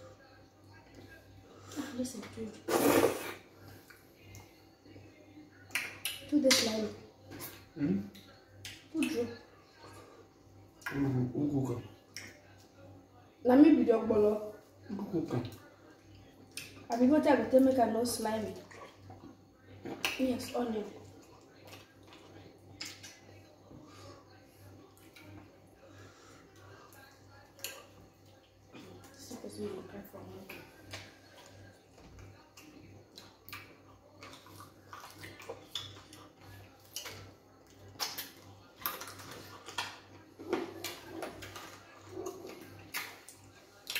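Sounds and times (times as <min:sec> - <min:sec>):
wet slurp: 0:02.6 - 0:03.4
wet mouth smacks and clicks: 0:05.7 - 0:06.7
quiet chewing: 0:18.5 - 0:43.9.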